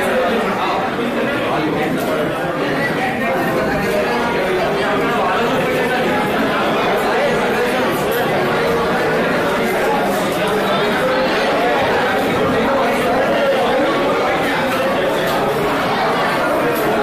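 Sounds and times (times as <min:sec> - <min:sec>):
hubbub of overlapping voices: 0:00.0 - 0:17.0.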